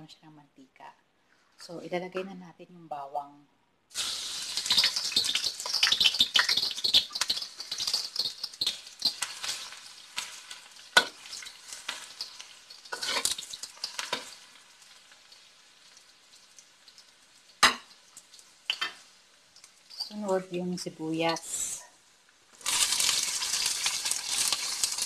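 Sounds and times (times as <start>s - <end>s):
garlic sizzling in hot oil: 3.9s - 25.0s
spatula scraping a wok: 4.6s - 14.4s.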